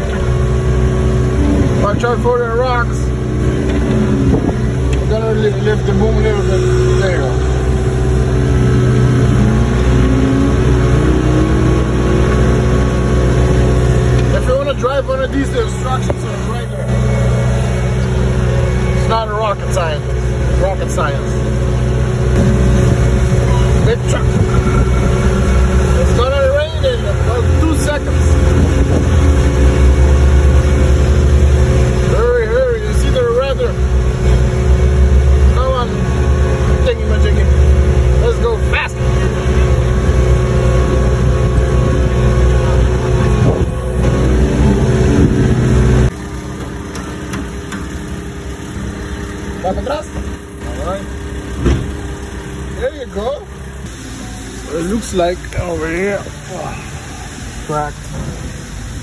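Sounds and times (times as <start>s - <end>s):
low engine hum: 0.0s - 59.0s
skid steer engine running: 0.0s - 59.0s.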